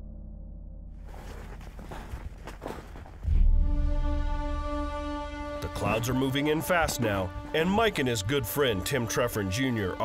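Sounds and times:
footsteps crunching in snow: 0:01.0 - 0:03.5
background music with low notes: 0:03.2 - 0:10.0.

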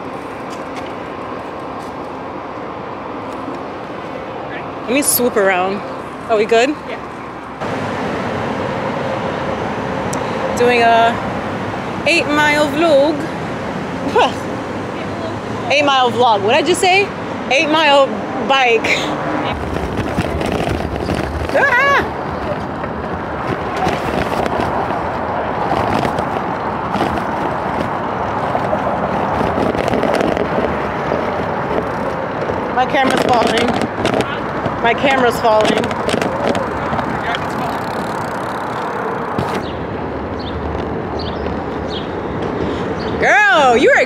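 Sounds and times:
wind rushing over microphone: 0:00.0 - 0:44.0
camera rattling on bicycle: 0:18.6 - 0:43.2
deep rumble: 0:18.6 - 0:43.2.

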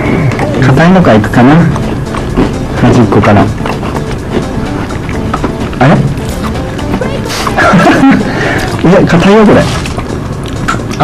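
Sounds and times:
person speaking: 0:00.0 - 0:09.8
background music: 0:00.0 - 0:11.0.

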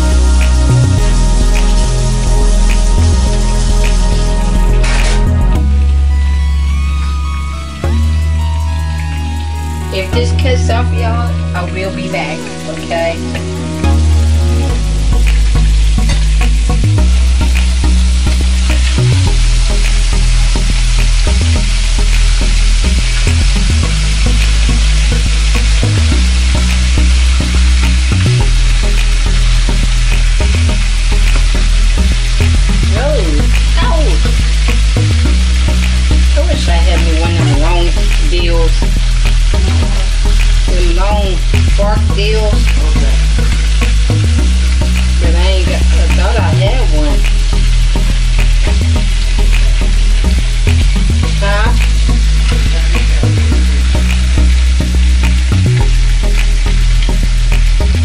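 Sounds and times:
loud low hum: 0:00.0 - 0:11.9, 0:13.0 - 0:58.0
fat sizzling in a pan: 0:00.0 - 0:58.0.

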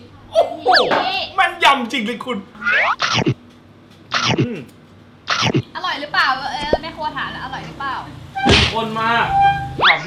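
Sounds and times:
dull thunk: 0:08.5 - 0:08.8.

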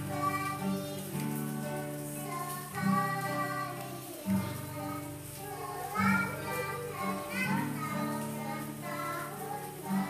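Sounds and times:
acoustic guitar: 0:00.0 - 0:10.0
children singing together: 0:00.0 - 0:10.0.

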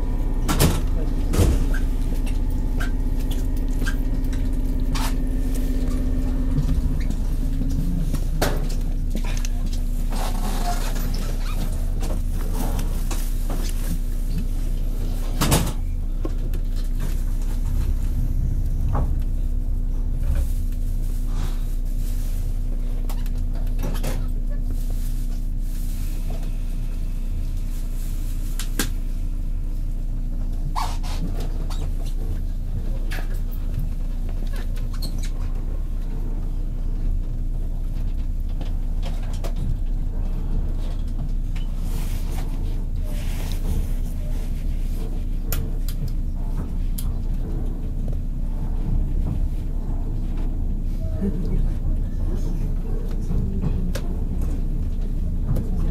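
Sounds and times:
train equipment humming: 0:00.0 - 0:55.9.

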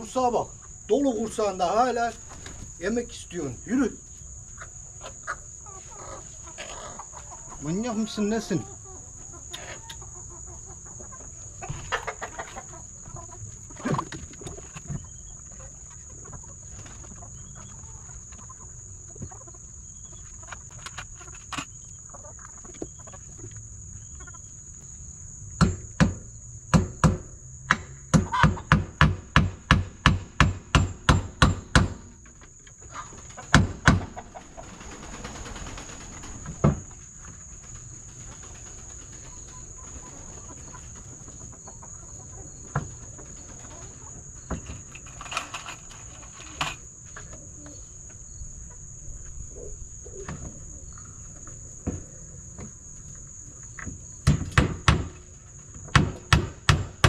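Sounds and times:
high insect drone: 0:00.0 - 0:57.0
hammer striking nails into wood: 0:55.9 - 0:57.0.

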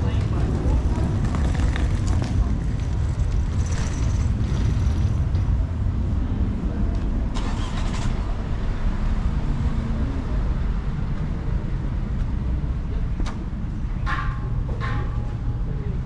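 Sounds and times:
traffic low rumble: 0:00.0 - 0:16.0.

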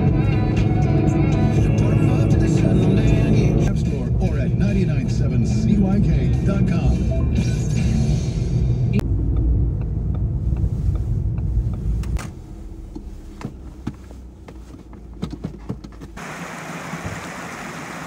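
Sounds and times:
road rumble inside car: 0:00.0 - 0:18.0.

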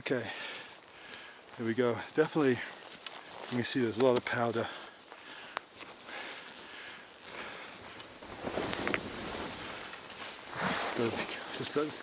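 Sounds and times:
skis swishing through powder snow: 0:01.6 - 0:12.0.

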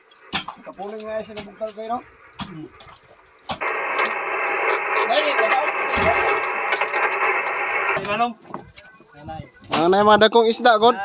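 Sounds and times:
radio static hiss: 0:00.0 - 0:10.2
voice over radio speaker: 0:00.6 - 0:03.0, 0:03.6 - 0:10.4.

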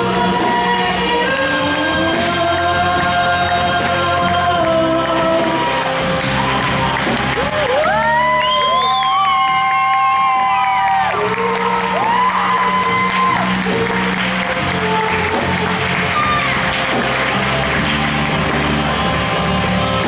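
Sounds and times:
women singing: 0:00.0 - 0:06.1
audience clapping and cheering: 0:00.0 - 0:20.0
live rock band: 0:00.0 - 0:20.0.

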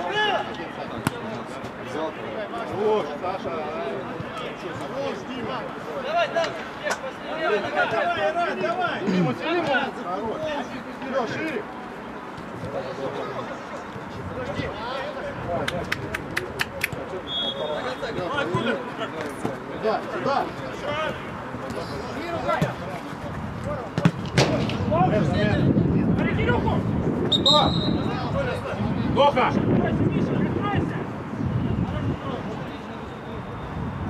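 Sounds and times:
high whistle-like tones: 0:27.3 - 0:28.1.

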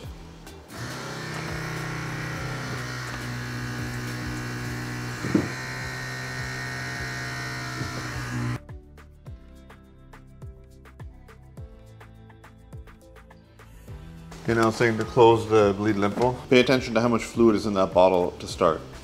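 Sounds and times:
background music: 0:00.0 - 0:19.0
pump motor electric buzz: 0:00.7 - 0:08.6.

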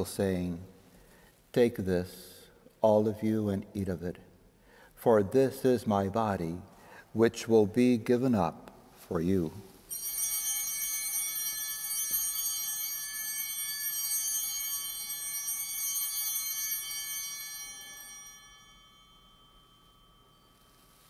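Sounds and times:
bell ringing: 0:09.9 - 0:21.0.

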